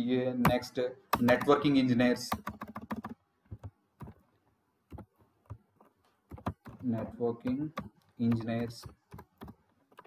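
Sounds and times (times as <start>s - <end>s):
man speaking: 0.0s - 2.4s, 6.8s - 8.9s
computer keyboard keystrokes: 1.1s - 1.6s, 2.3s - 4.2s, 6.3s - 10.0s.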